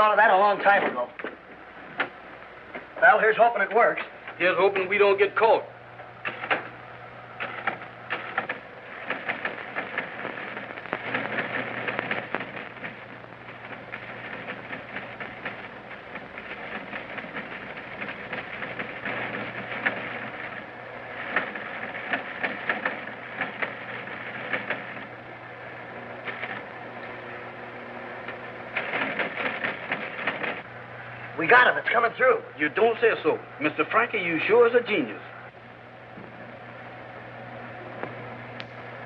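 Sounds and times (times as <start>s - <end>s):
faint low hum: 0.0s - 39.0s
teletype machine clattering: 6.2s - 6.8s, 7.4s - 25.2s, 26.2s - 26.7s, 28.3s - 30.6s.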